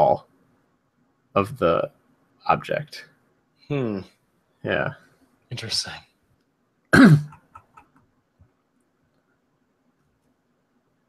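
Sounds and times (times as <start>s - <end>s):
person clearing throat: 7.0s - 7.8s.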